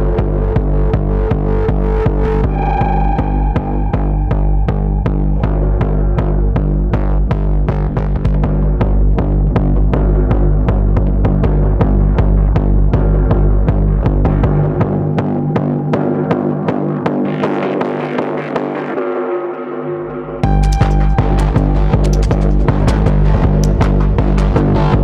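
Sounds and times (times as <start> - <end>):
low bass drone: 0.0 - 17.6, 20.4 - 25.0.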